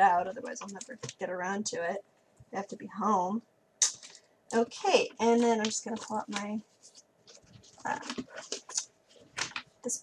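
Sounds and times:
pages rustling: 0:05.0 - 0:09.8.

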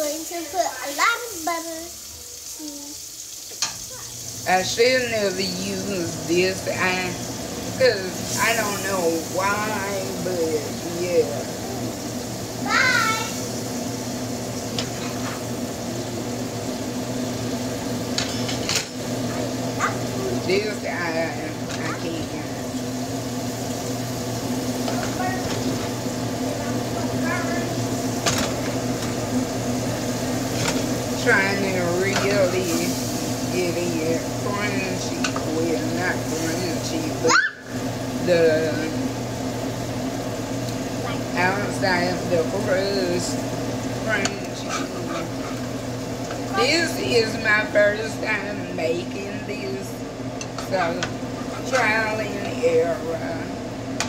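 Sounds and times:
mechanical hum with hiss: 0:00.0 - 0:54.0.

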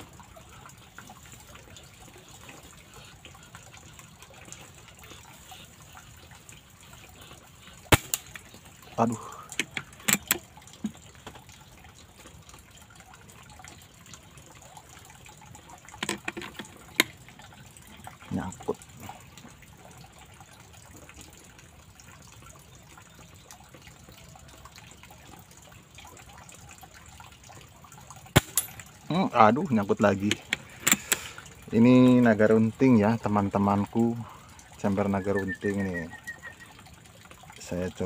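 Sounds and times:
low steady hiss: 0:00.0 - 0:38.0.

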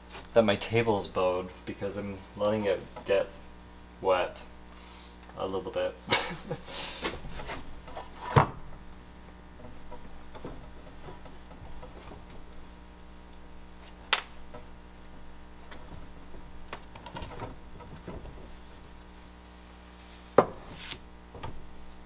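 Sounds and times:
sharp knocks on workbench: 0:20.4 - 0:20.7.

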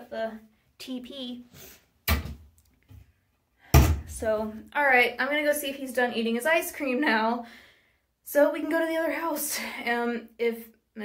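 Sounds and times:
cabinet doors thudding shut: 0:03.7 - 0:04.2.

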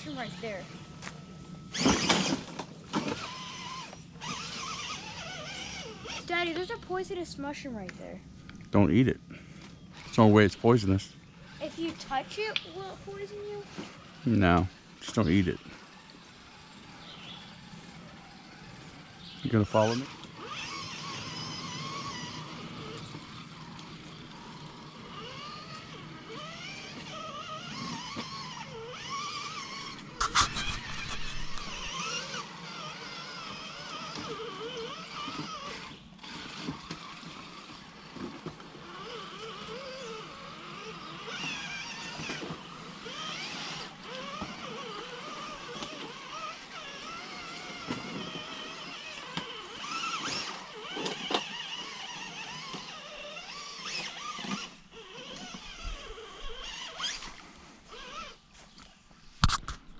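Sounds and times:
rc truck motors whining: 0:00.0 - 0:59.9.

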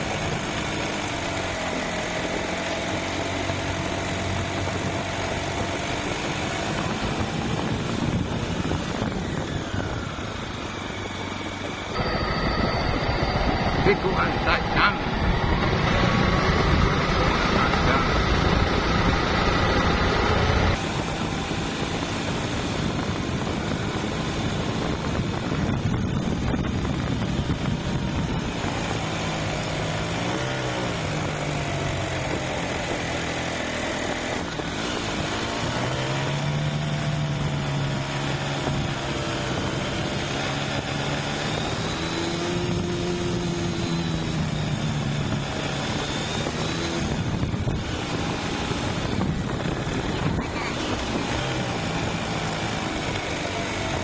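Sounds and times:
small motorcycle engine running: 0:00.0 - 0:54.0
wind and road noise: 0:00.0 - 0:54.0.

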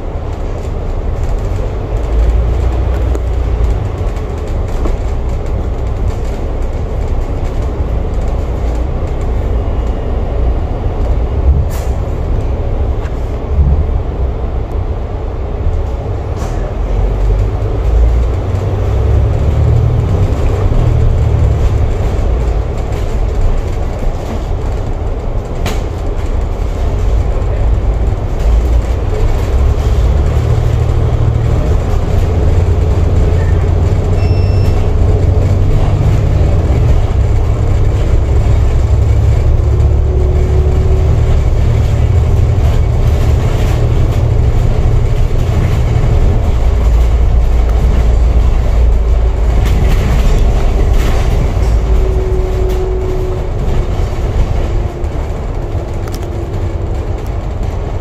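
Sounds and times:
bus engine drone: 0:00.0 - 0:58.0.

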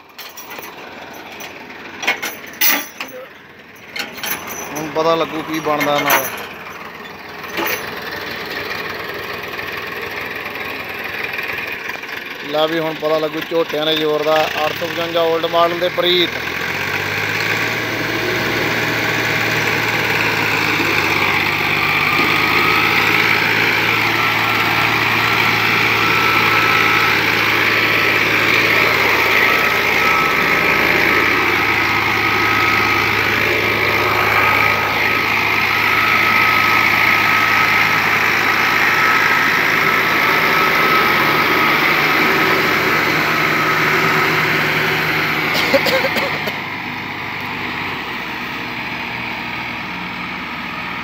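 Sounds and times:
tractor engine under load: 0:00.0 - 0:51.0.

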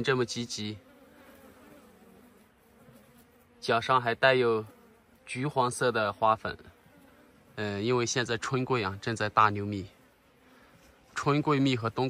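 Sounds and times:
bees buzzing: 0:00.0 - 0:12.0.

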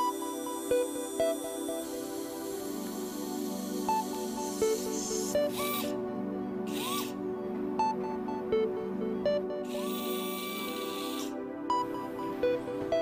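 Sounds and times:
soft background music: 0:00.0 - 0:13.0
surgical drill whining: 0:09.7 - 0:11.4.

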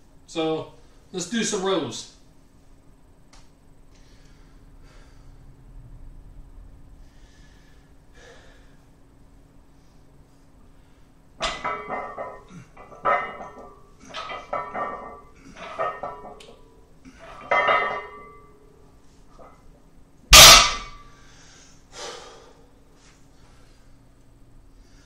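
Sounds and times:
barbell clanking on floor: 0:11.4 - 0:18.6, 0:20.3 - 0:21.1
heavy breath: 0:21.2 - 0:22.8.

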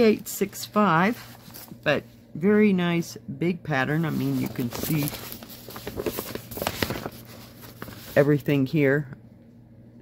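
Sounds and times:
paper rustling: 0:00.0 - 0:01.8, 0:03.9 - 0:08.4.

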